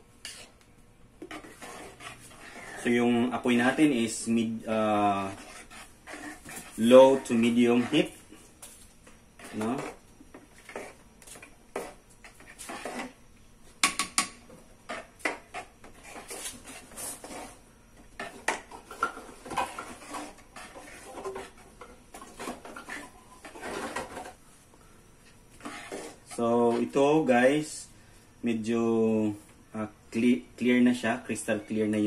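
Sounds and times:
mixture simmering: 0:00.0 - 0:28.0.

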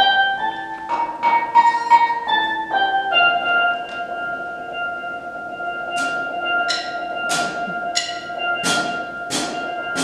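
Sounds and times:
steady held tone: 0:00.0 - 0:10.0
steel pan notes ringing: 0:00.0 - 0:10.0.

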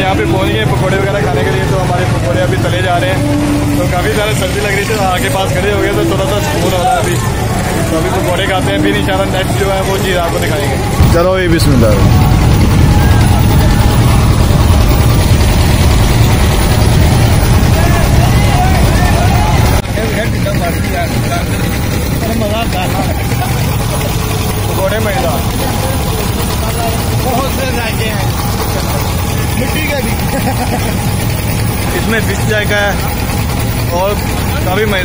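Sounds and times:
engine running: 0:00.0 - 0:35.0
voices chattering: 0:00.0 - 0:35.0.

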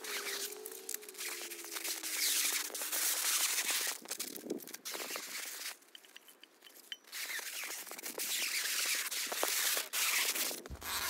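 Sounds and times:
plastic wrap rustling: 0:00.0 - 0:05.9.

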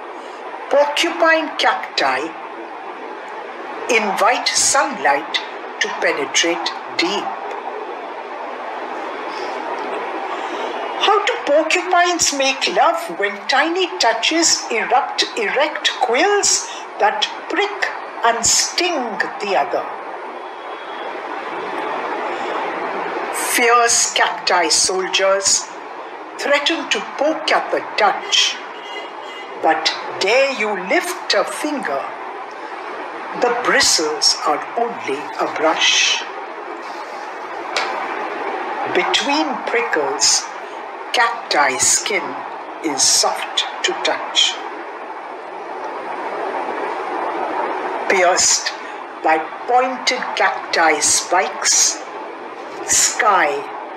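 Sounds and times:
rushing background noise: 0:00.0 - 0:53.9.

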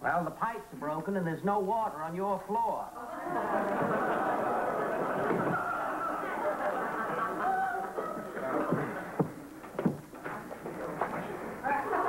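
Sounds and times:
studio audience laughing: 0:03.0 - 0:09.2, 0:11.4 - 0:12.0.

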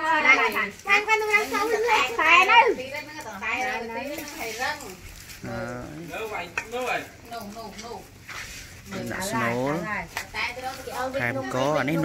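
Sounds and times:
women talking: 0:00.0 - 0:05.1, 0:08.8 - 0:12.0.

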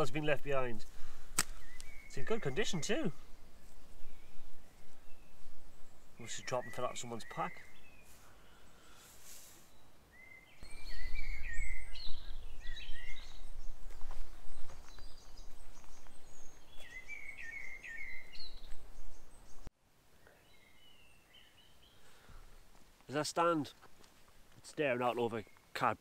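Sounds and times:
songbirds chirping: 0:00.0 - 0:26.0.

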